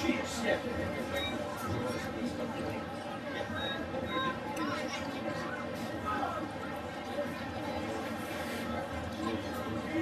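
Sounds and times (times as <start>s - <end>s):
stadium crowd chatter: 0.0s - 10.0s.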